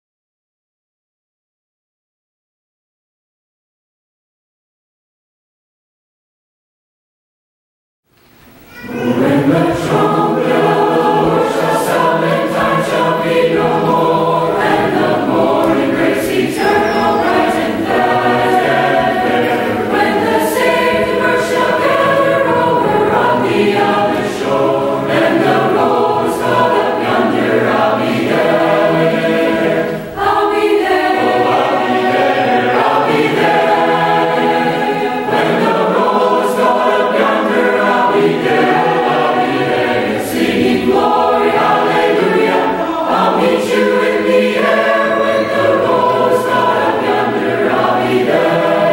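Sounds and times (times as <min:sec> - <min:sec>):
mixed choir singing: 0:08.6 - 0:48.9.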